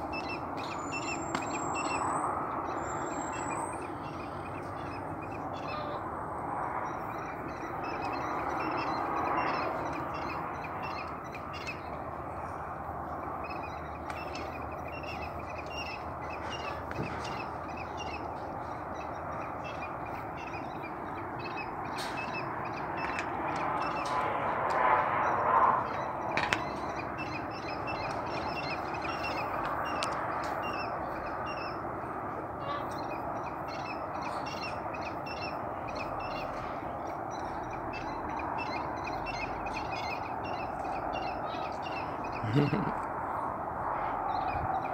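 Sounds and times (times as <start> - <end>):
harsh cawing animal calls: 3.8 - 6.2, 32.5 - 33.0.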